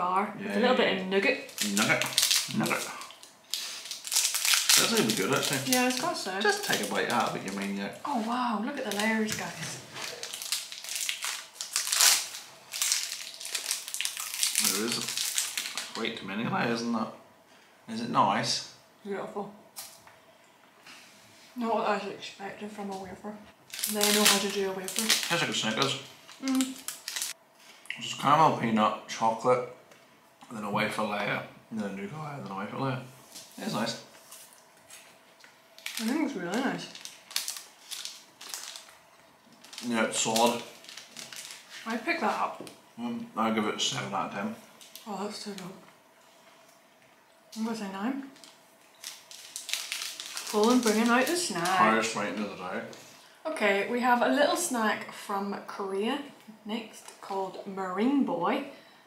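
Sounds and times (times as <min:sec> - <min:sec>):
plastic wrapper crinkling: 0:01.4 - 0:07.9, 0:08.8 - 0:16.2, 0:23.7 - 0:27.4, 0:33.3 - 0:42.8, 0:44.8 - 0:45.7, 0:47.5 - 0:53.0.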